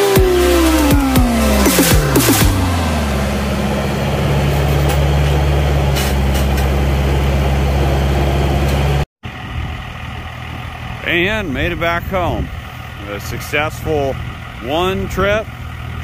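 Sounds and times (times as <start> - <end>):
diesel engine running: 0.0 - 16.0
engine idling: 0.0 - 16.0.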